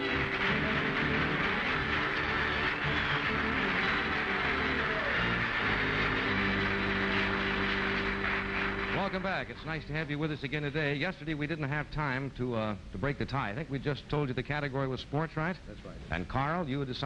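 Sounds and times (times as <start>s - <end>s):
audience applauding: 0.0s - 10.3s
band theme music: 0.0s - 10.6s.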